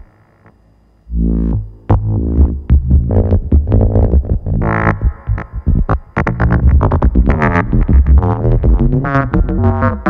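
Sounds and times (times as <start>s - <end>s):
low bass pulses: 1.1s - 10.0s
synthesizer plucked notes: 1.1s - 10.0s.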